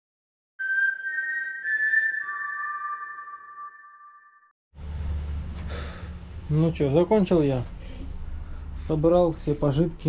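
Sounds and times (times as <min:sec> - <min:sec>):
pure high electronic tones: 0:00.6 - 0:04.5.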